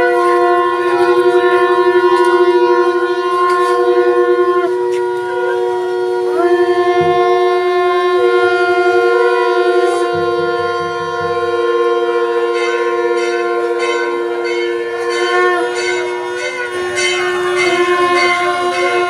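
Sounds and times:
conch shells blowing: 0.0s - 19.0s.

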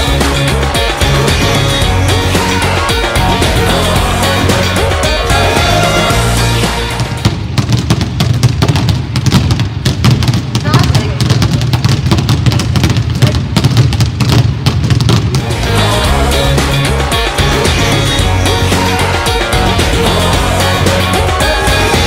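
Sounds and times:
basketballs dribbling on hall floor: 7.0s - 15.5s.

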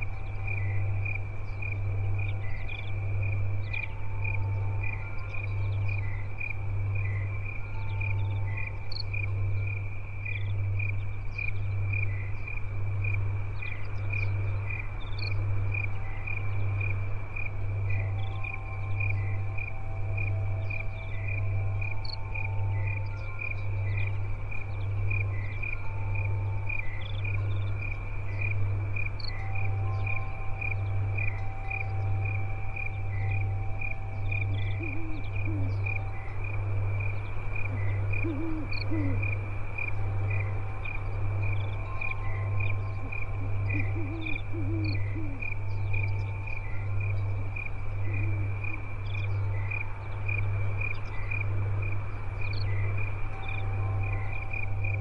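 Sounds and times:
crickets chirping: 0.0s - 55.0s
low pulsing hum: 0.0s - 55.0s.

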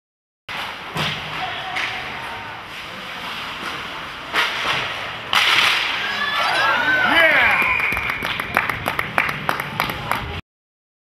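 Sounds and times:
stick hitting puck: 4.3s - 5.9s.

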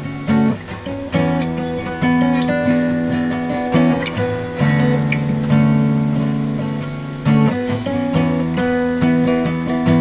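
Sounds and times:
acoustic guitar melody: 0.0s - 10.0s
backing track: 0.0s - 10.0s.

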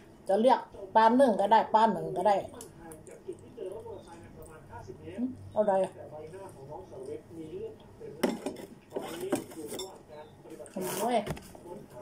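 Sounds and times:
cutlery clinking against metal bowl: 8.2s - 10.3s.

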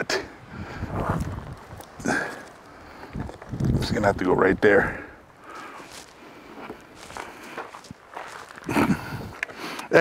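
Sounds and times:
footsteps on dirt and gravel: 0.8s - 9.8s.

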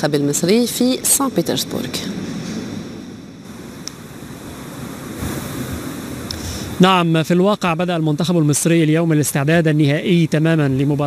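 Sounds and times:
wind on microphone: 0.0s - 7.8s.

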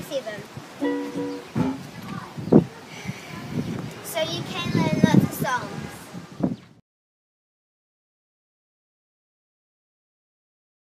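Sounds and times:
ukulele chord strummed: 0.8s - 1.9s.

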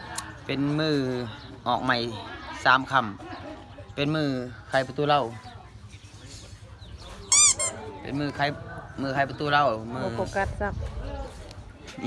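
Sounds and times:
high-pitched squeak: 7.3s - 7.8s.

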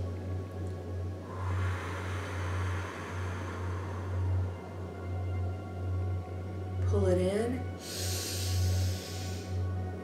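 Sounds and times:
steady low hum: 0.0s - 10.0s
deep breath in: 1.2s - 5.0s, 7.8s - 9.7s.

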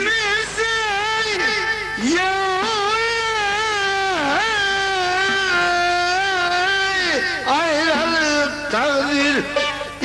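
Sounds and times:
man singing long held note: 0.0s - 10.0s.

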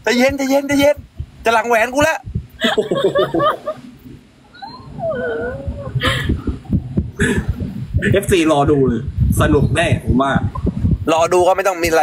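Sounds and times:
low muffled murmuring: 4.4s - 9.1s.

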